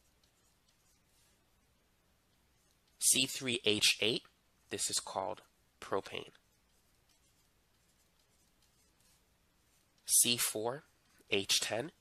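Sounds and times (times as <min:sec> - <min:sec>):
pen writing on digital surface: 0:00.0 - 0:01.4, 0:06.1 - 0:10.1.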